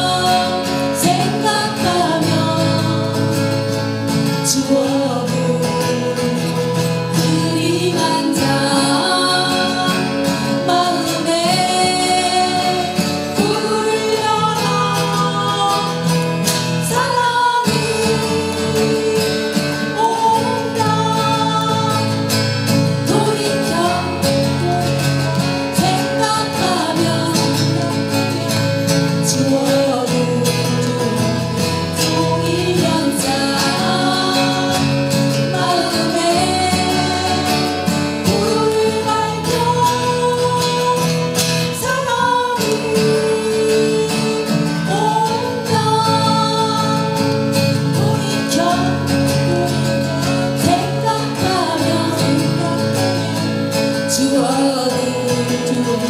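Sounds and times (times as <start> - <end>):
acoustic guitars playing: 0.0 - 56.0
women singing: 0.0 - 56.0.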